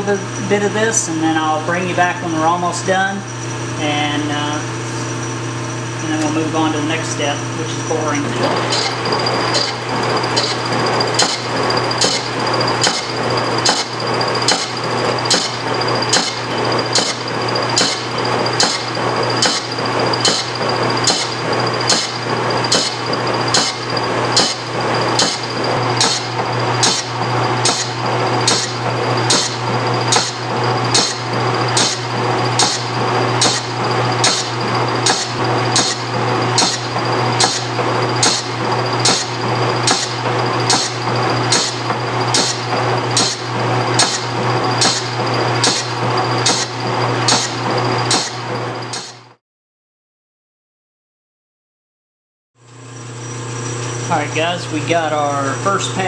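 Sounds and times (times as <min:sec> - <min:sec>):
lathe humming: 0:00.0 - 0:49.2, 0:52.7 - 0:56.0
lathe tool bit knocking on metal: 0:08.5 - 0:49.2.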